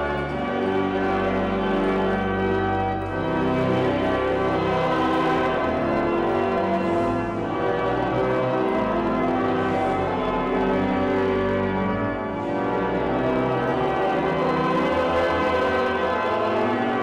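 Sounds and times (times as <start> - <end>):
church bells pealing: 0.0 - 17.0.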